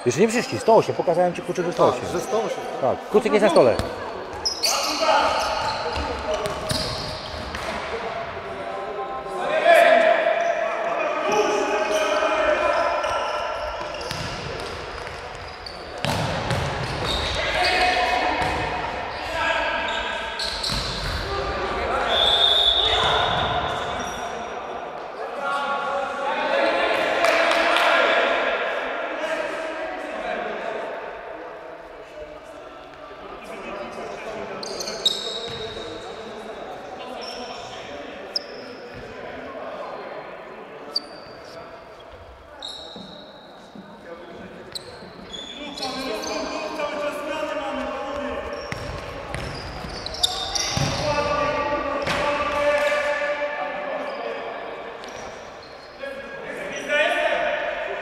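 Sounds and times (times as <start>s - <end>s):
players calling and shouting: 0.0s - 31.6s, 32.5s - 58.0s
ball kicked and bouncing: 16.0s - 16.8s.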